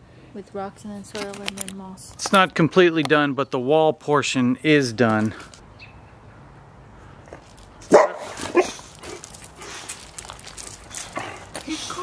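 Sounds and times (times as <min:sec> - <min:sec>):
dog barking: 0:07.9 - 0:08.8.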